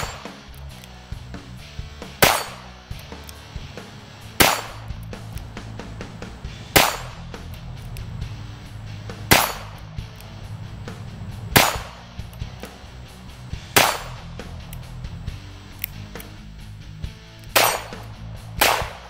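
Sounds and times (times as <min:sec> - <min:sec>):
revolver gunshots: 0:00.0 - 0:00.5, 0:02.0 - 0:14.6, 0:17.4 - 0:19.0.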